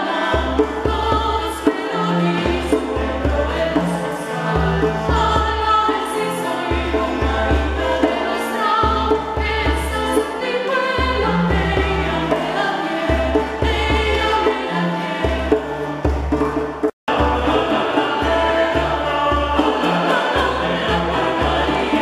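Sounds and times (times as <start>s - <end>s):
mixed choir singing in parts: 0.0s - 22.0s
plucked string instrument: 0.0s - 22.0s
violins playing: 0.0s - 22.0s.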